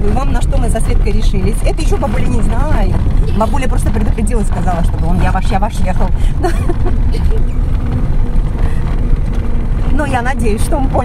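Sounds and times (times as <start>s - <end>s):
car engine and tyres rumbling: 0.0s - 11.0s.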